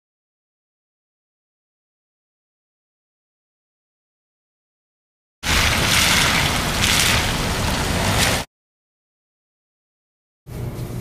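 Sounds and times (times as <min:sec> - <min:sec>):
road and tyre noise: 0:05.4 - 0:08.5
wind rumbling on microphone: 0:05.4 - 0:08.5.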